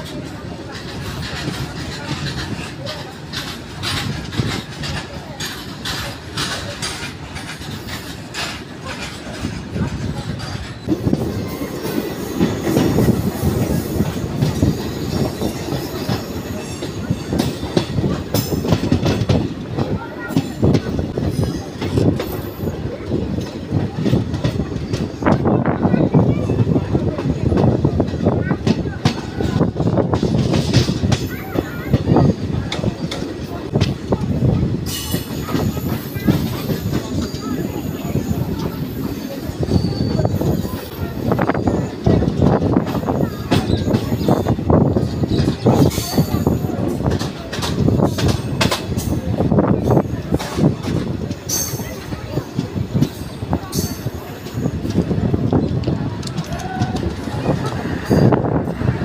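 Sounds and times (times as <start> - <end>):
clickety-clack over rail joints: 0.0 - 59.0
train wheel rumble: 0.0 - 59.0
wheel squeal: 39.4 - 40.9.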